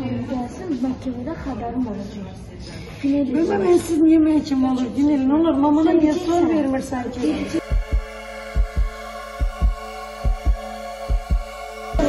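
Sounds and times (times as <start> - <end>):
sustained synth chord: 7.4 - 12.0
heartbeat thumps: 7.6 - 12.0.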